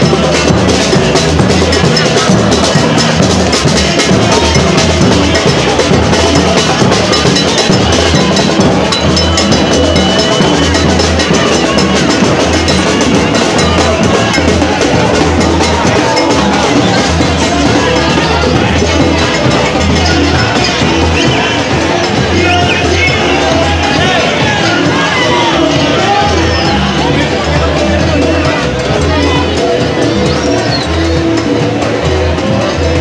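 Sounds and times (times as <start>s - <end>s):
cowbell played by hand: 0.0s - 33.0s
large drum beating: 0.0s - 33.0s.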